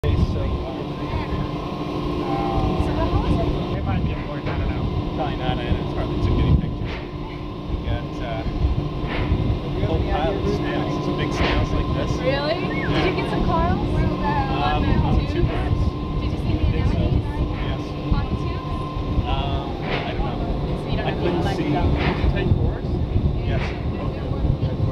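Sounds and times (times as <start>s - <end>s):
steady hum: 0.0s - 24.9s
thin steady whine: 0.0s - 24.9s
wind buffeting microphone: 0.0s - 24.9s.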